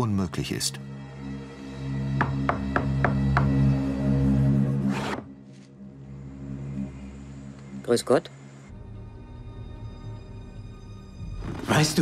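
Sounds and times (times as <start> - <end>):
low music drone: 0.0 - 12.0
knocks on wooden door: 2.2 - 3.6.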